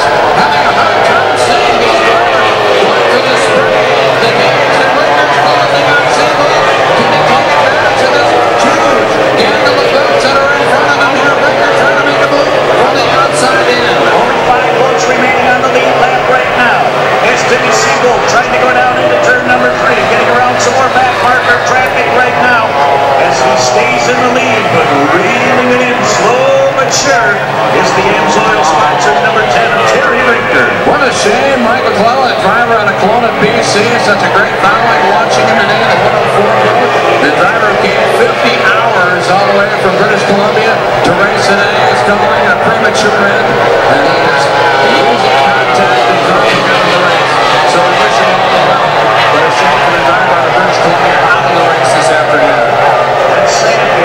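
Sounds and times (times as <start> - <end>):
outboard racing engines whining: 0.0 - 54.0.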